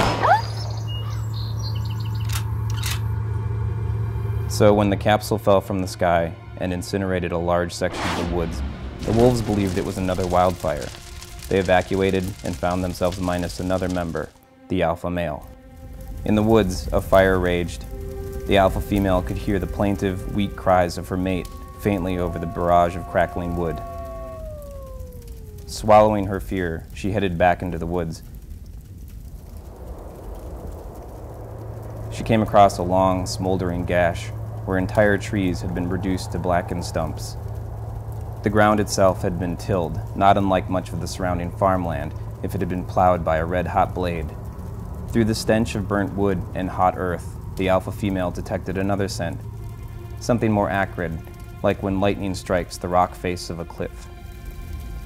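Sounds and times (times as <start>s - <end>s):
faint bird chirps: 0.3s - 2.4s
flames burning: 7.8s - 55.0s
steady low hum: 28.3s - 52.3s.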